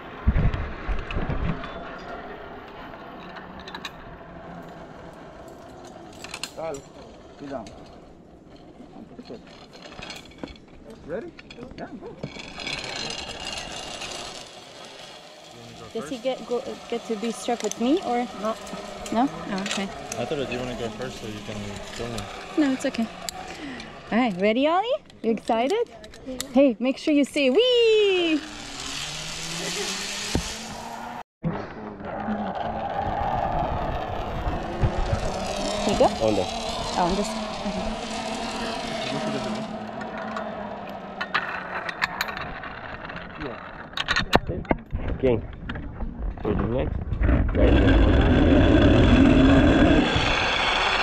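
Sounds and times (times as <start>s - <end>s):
zip-line pulleys whirring on cable: 0.0s - 10.7s, 12.2s - 31.2s, 32.2s - 44.1s, 47.6s - 51.0s.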